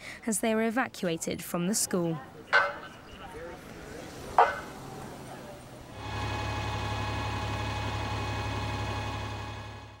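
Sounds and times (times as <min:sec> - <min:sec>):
vehicle engine running: 0:06.0 - 0:10.0.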